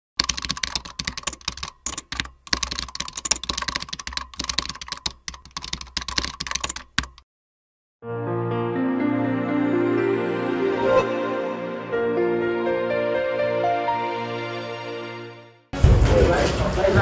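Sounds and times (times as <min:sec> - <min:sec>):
keyboard typing: 0:00.2 - 0:07.2.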